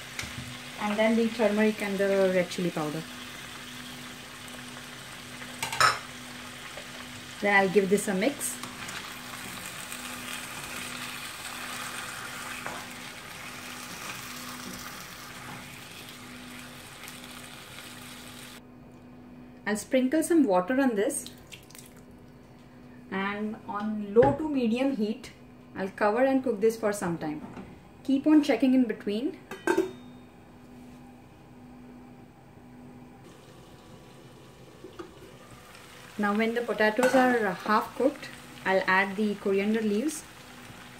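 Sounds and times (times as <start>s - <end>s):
potato slices sizzling in oil: 0.0s - 18.6s, 33.3s - 40.9s
faint steady hum: 0.0s - 40.9s.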